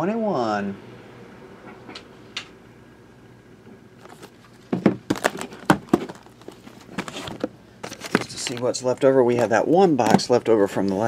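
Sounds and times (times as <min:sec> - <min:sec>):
cardboard boxes knocking and rustling: 0:04.1 - 0:08.6.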